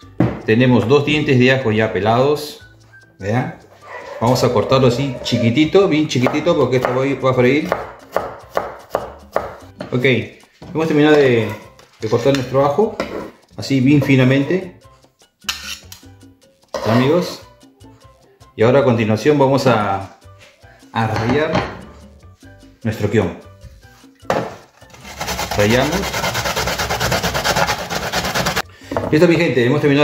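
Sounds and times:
quiet background music: 0.0s - 30.0s
knife scraping on cutting board: 13.0s - 13.5s, 15.4s - 16.0s, 24.4s - 28.6s
ginger grated on box grater: 24.9s - 28.6s.

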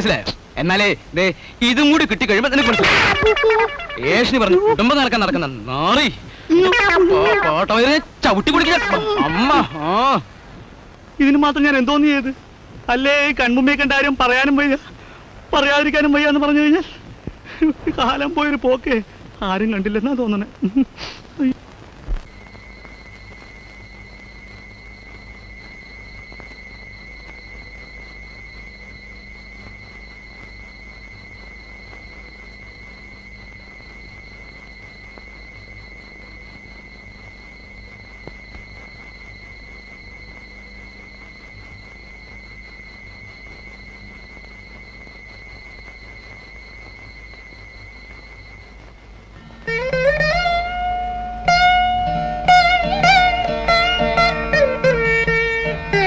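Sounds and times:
faint low hum and hiss: 0.0s - 56.0s
steady high-pitched tone: 1.8s - 10.0s, 49.4s - 56.0s.

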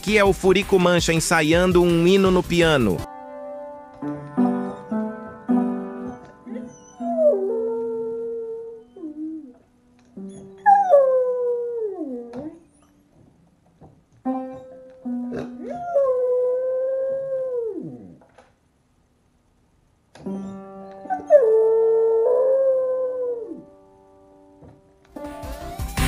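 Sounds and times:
loud music with a beat: 0.0s - 3.1s, 25.3s - 26.0s
piano notes: 0.0s - 16.7s, 20.2s - 26.0s
dog howling: 6.0s - 9.6s, 10.5s - 12.7s, 15.3s - 18.2s, 21.0s - 23.7s.

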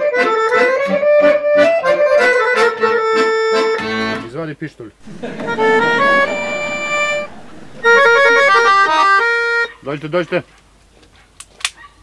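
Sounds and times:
button accordion playing: 0.0s - 4.3s, 5.0s - 9.7s.

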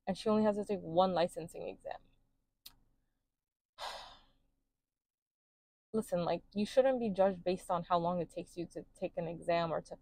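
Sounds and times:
woman sighing: 3.8s - 4.3s.

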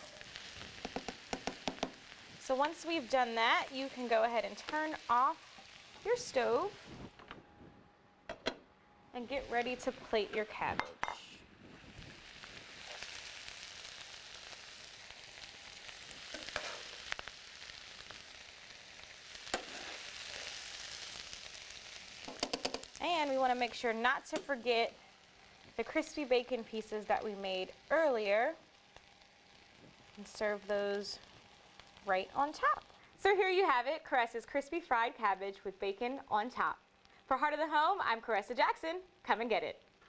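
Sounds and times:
vegetables sizzling in a pan: 0.0s - 7.2s, 9.2s - 40.0s
sharp pops and clicks of oil: 0.8s - 2.0s, 22.2s - 23.0s
metal tongs clicking on pan: 22.3s - 22.9s, 24.3s - 24.6s.

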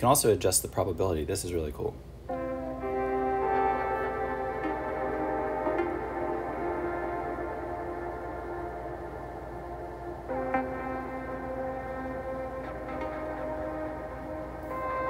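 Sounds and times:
synthesizer long held notes: 2.3s - 15.0s.

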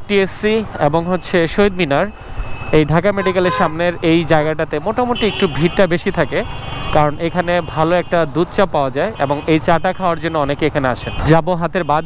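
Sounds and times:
man talking: 0.0s - 12.0s
traffic noise: 0.0s - 12.0s.

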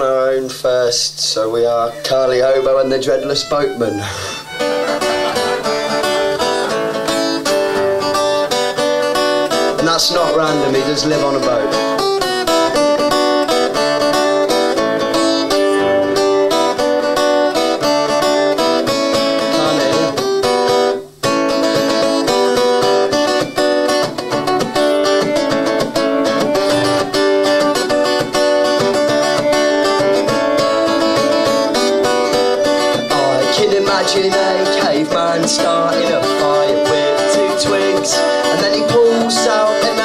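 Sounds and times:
acoustic guitar playing: 0.0s - 40.0s.

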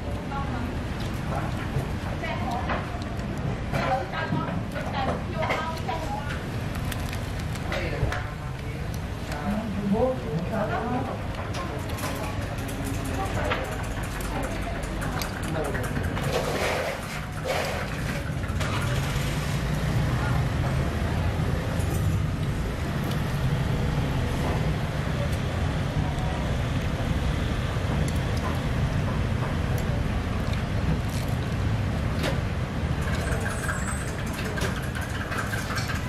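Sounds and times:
motorbike engines: 0.0s - 36.0s
street traffic rumble: 0.0s - 36.0s.

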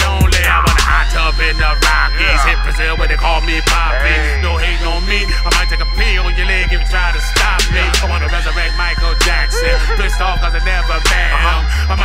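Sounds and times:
hip hop beat with deep bass: 0.0s - 12.0s
person rapping into a microphone: 0.0s - 12.0s.

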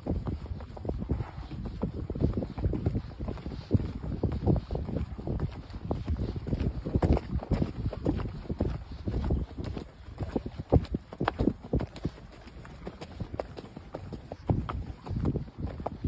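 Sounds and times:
horse hoofbeats on dirt: 0.0s - 16.0s
wind buffeting microphone: 0.0s - 16.0s.

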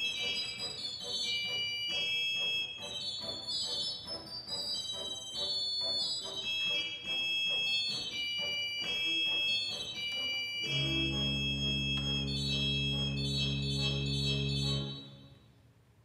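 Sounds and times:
low organ chords: 0.0s - 15.5s
high organ notes: 0.0s - 15.6s.

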